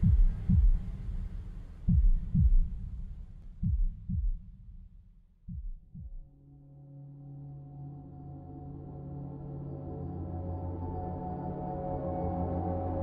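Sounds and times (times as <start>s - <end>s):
low rumble: 0.0s - 4.7s
heartbeat thumps: 0.0s - 4.9s, 5.5s - 6.3s.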